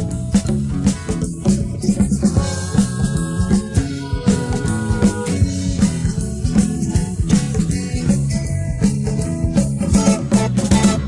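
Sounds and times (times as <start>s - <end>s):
bass: 0.0s - 11.0s
drums keeping a steady beat: 0.0s - 11.0s
guitar: 0.0s - 11.0s.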